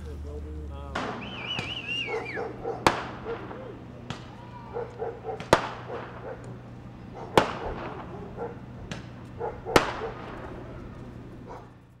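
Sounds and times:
firecrackers banging with echo: 0.0 - 12.0
dog barking: 1.6 - 3.8, 4.6 - 11.9.

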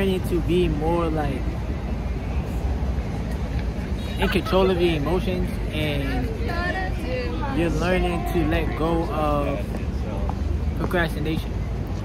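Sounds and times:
distant city traffic rumble: 0.0 - 12.0.

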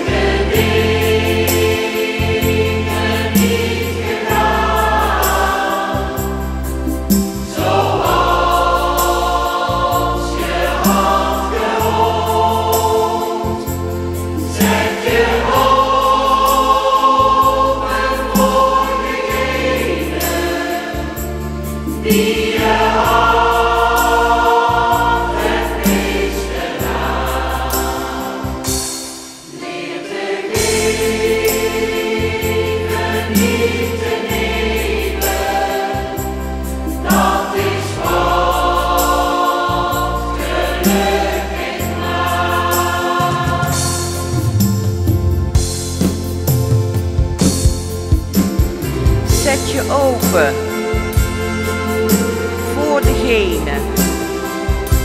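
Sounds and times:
choir singing a slow song: 0.0 - 55.0
instrumental accompaniment: 42.4 - 55.0.

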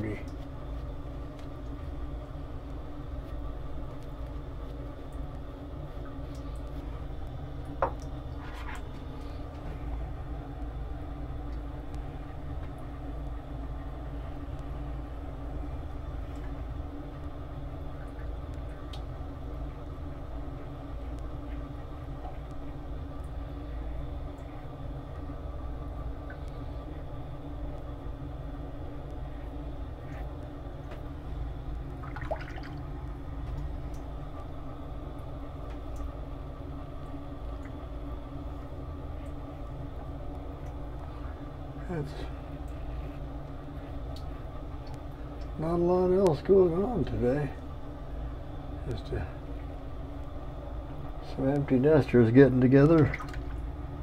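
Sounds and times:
low rumble and hum: 0.0 - 54.0.

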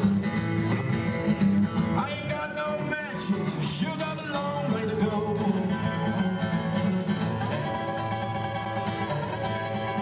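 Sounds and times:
two acoustic guitars playing: 0.0 - 10.0.

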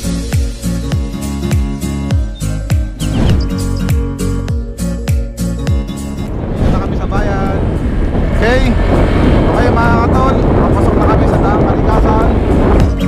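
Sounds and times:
wind rushing over microphone: 6.0 - 13.0
motorcycle engine and road rumble: 6.2 - 13.0.

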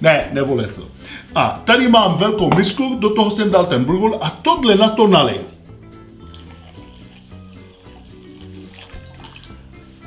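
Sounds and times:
soft background music: 0.0 - 10.0
water trickling into a bowl: 6.0 - 10.0.

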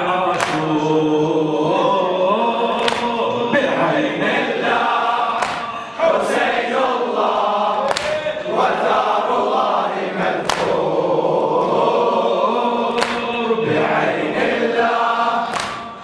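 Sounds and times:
congregation chanting in unison: 0.0 - 16.0
hand strikes: 0.4 - 0.6, 2.8 - 3.2, 5.4 - 5.7, 7.9 - 8.2, 10.4 - 10.8, 13.0 - 13.3, 15.5 - 15.9.

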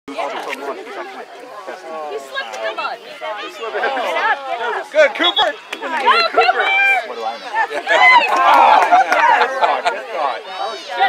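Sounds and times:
overlapping voices chattering: 0.1 - 11.0.

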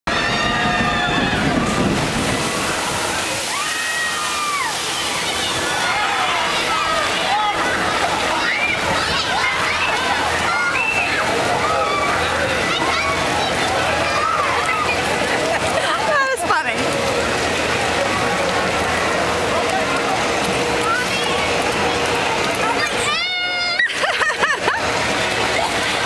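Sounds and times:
people shouting and shrieking: 0.1 - 15.2, 22.7 - 26.0
water sloshing and splashing: 0.3 - 26.0.

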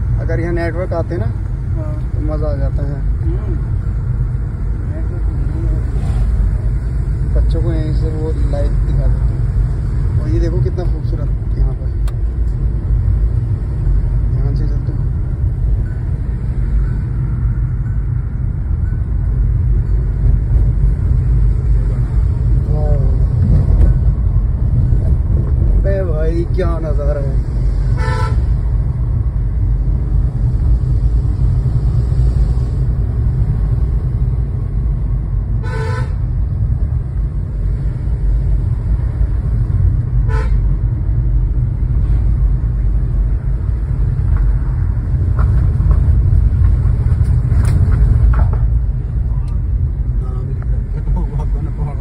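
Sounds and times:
car road and engine rumble: 0.0 - 52.0
car horn toots: 28.0 - 28.5, 35.6 - 36.2, 40.2 - 40.7.

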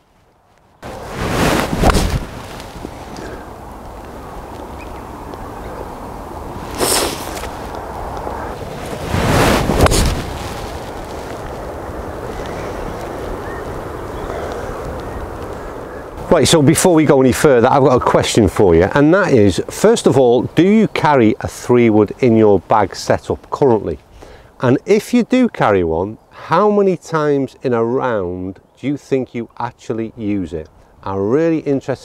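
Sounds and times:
wind rumbling on microphone: 0.0 - 18.9.

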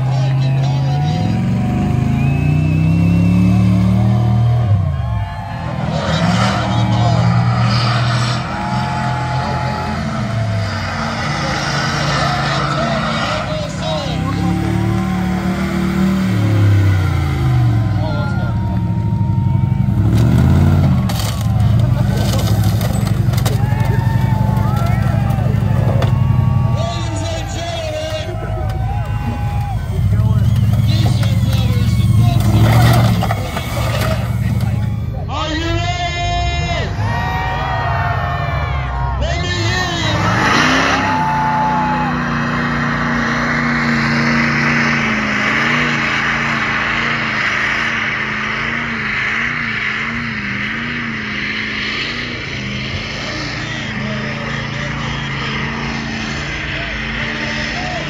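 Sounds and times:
voices: 0.0 - 42.4, 52.8 - 58.0
truck engine revving: 0.0 - 58.0.

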